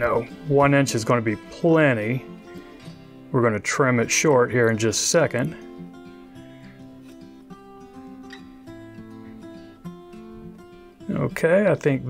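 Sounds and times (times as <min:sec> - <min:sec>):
acoustic guitar picking: 0:00.0 - 0:12.0.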